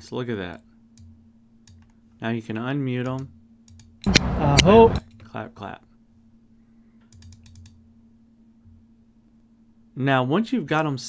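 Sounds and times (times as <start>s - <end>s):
faint low hum: 0.0s - 11.0s
computer mouse clicking: 3.0s - 5.3s, 7.0s - 7.8s.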